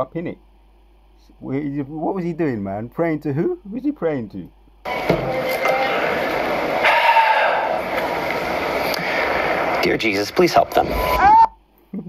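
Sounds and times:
speaker background hiss: 0.0 - 12.0.

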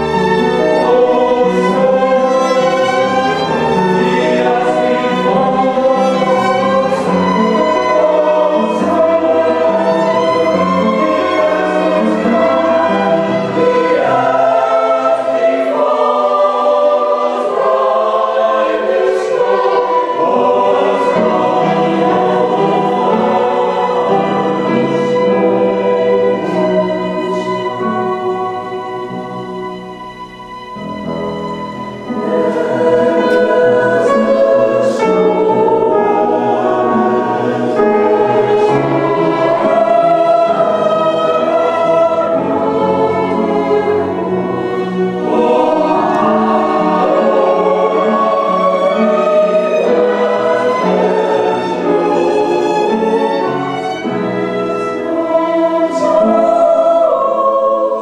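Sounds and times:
keyboard: 0.0 - 58.0
violins playing: 0.0 - 58.0
women's choir singing: 0.0 - 58.0.

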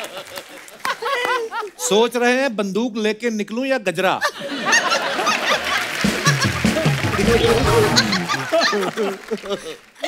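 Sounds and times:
group of people laughing: 0.0 - 1.8, 4.2 - 10.0
man laughing: 5.2 - 9.8
person speaking: 7.1 - 8.5.

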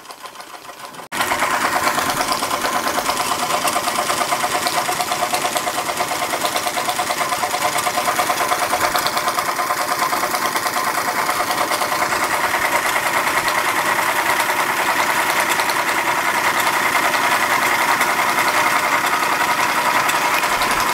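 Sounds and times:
toy steam engine running: 0.0 - 20.9.

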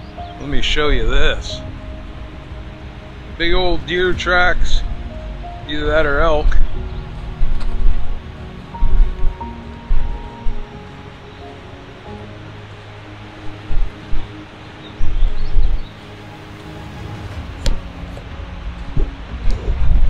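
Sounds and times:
background music with held notes: 0.0 - 20.0
dull low thumps: 1.3 - 10.7, 17.0 - 20.0.

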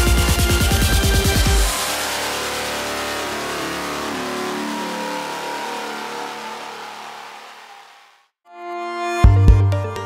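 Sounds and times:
car engine revving: 1.4 - 8.3.

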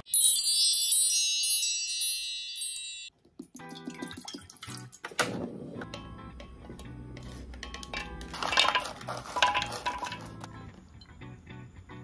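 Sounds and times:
high ringing chime tones: 0.0 - 3.1.

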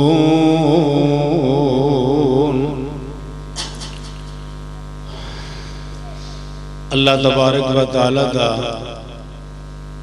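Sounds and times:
sound system electrical hum: 0.0 - 10.0.

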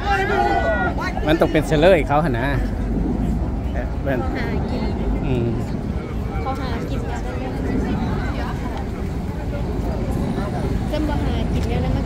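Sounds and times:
low rumble of road traffic: 0.0 - 12.0
pedestrians talking: 0.0 - 12.0.

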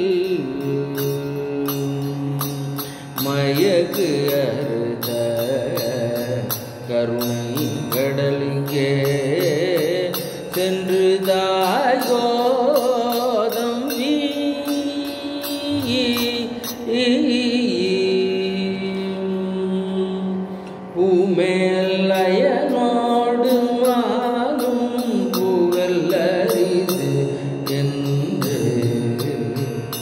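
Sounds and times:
man singing unaccompanied: 0.0 - 30.0.

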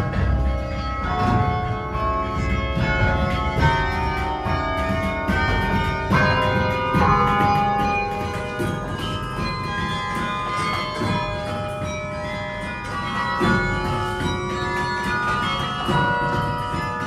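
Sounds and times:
carillon bells melody: 0.0 - 17.0.

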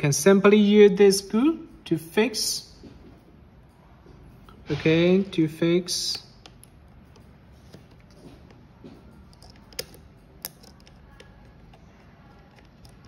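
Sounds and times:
small screwdriver turning tiny screw: 9.2 - 13.0.

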